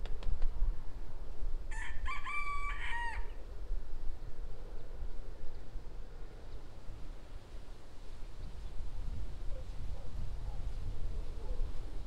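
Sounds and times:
low rumble of wind: 0.0 - 12.0
rooster crowing: 1.7 - 3.4.

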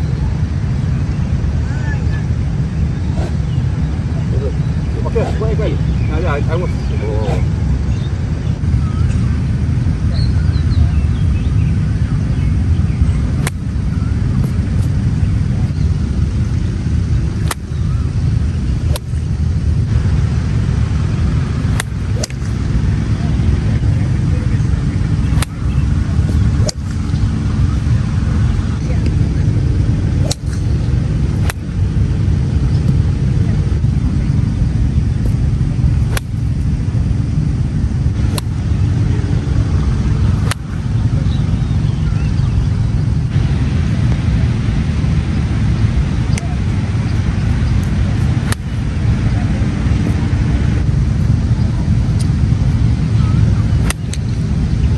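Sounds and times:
low rumble: 0.0 - 54.9
golf club striking ball: 3.0 - 3.6, 13.4 - 13.7, 17.4 - 17.8, 18.8 - 19.2, 21.7 - 22.6, 25.2 - 27.0, 30.2 - 31.7, 36.0 - 36.5, 38.2 - 38.7, 40.3 - 40.8, 47.8 - 48.7, 53.8 - 54.2.

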